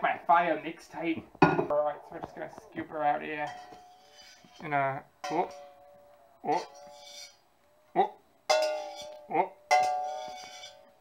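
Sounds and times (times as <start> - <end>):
knife striking metal saucepan: 8.5 - 10.9.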